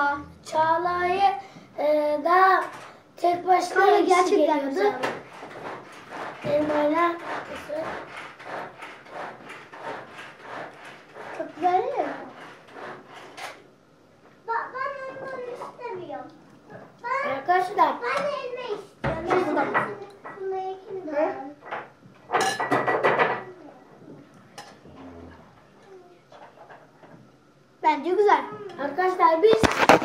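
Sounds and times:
children talking: 0.0s - 5.2s, 6.4s - 8.1s, 11.3s - 12.4s, 14.4s - 21.6s, 27.8s - 30.0s.

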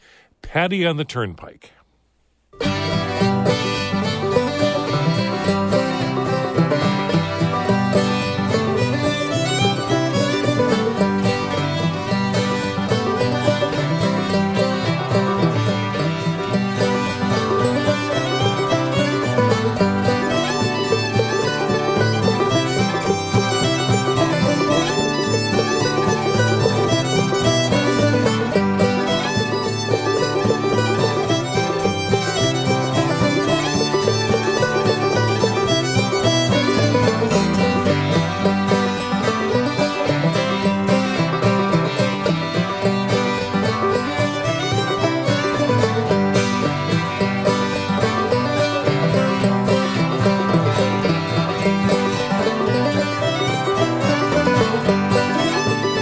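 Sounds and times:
string band playing dance tune: 0.0s - 1.7s, 2.6s - 56.0s.

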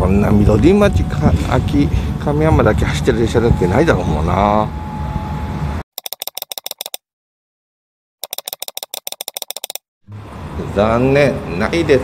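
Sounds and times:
rapid typing clicks: 6.0s - 7.0s, 8.2s - 9.8s.

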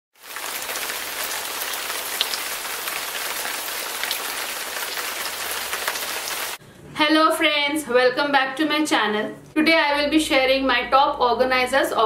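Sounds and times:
hiss of falling water: 0.2s - 6.6s.

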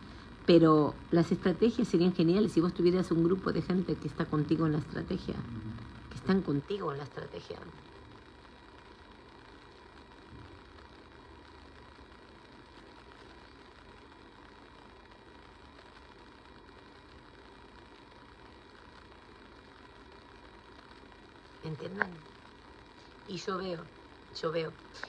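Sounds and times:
low hiss: 0.0s - 25.0s
thin constant hum: 0.0s - 25.0s.

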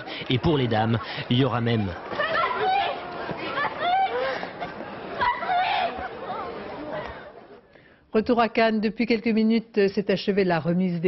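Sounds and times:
crowd chatter: 0.0s - 8.5s.

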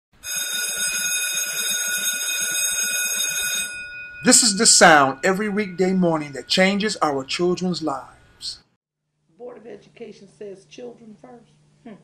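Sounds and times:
electric school bell ringing: 0.2s - 8.2s.

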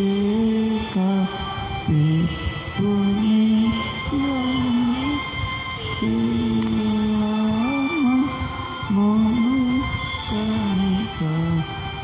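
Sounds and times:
person humming a slow tune: 0.0s - 12.0s.

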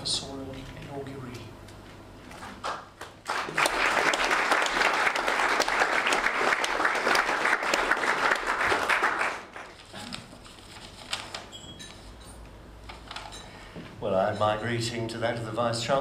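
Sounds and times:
audience applauding: 2.6s - 9.9s.

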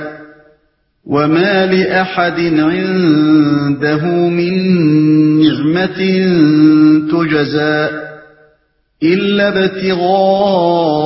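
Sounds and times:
man chanting melodic recitation: 1.1s - 8.4s, 9.0s - 11.0s.

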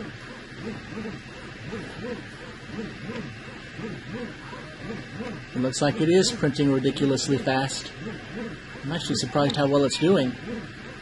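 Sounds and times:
printer stepper motors whining: 0.0s - 11.0s.

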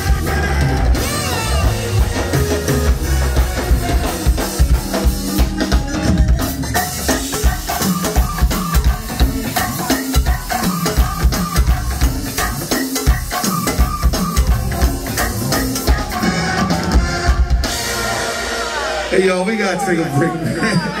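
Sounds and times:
walking bass guitar: 0.0s - 19.0s
electric guitar: 0.0s - 19.1s
drum kit beat: 0.0s - 19.9s.

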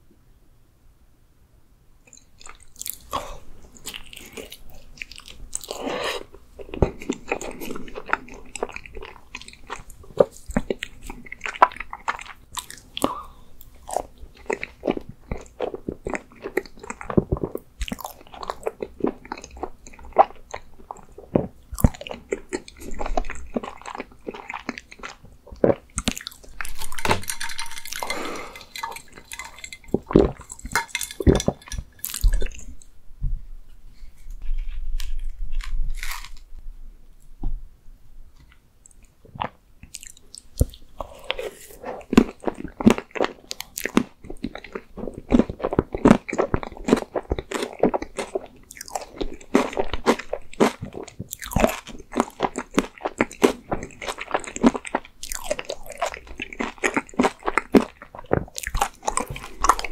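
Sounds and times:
wet chewing: 2.1s - 32.9s, 38.9s - 59.9s.

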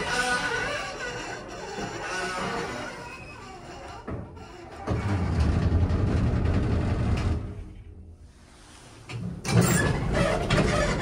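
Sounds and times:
elevator car low rumble: 4.9s - 7.7s.

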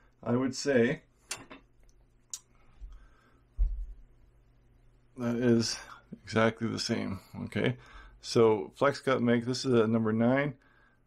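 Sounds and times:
soft low thump: 3.6s - 4.0s.

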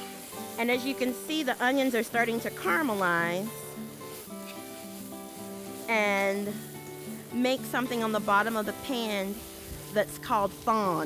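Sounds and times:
background music long notes: 0.0s - 11.0s
onions sizzling in a skillet: 0.0s - 11.0s.

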